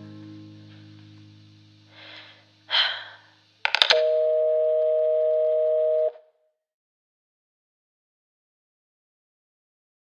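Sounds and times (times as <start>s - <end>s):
person breathing: 1.9s - 3.5s
quick clicks: 3.6s - 4.1s
two-note telephone line tone: 3.9s - 6.2s.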